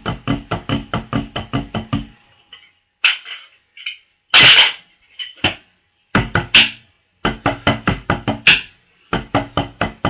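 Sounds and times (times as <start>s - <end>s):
drumsticks on practice pad: 0.0s - 10.0s.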